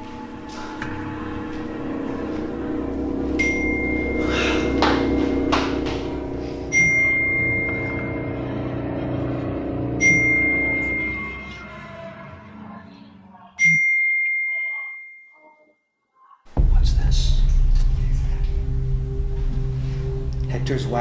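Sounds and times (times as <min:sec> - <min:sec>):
low musical drone: 0:00.0 - 0:13.5, 0:16.6 - 0:21.0.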